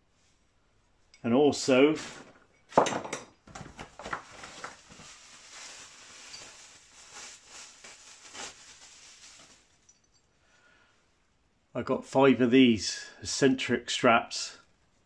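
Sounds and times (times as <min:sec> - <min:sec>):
rustling and clattering of parts: 0:02.0 - 0:10.4.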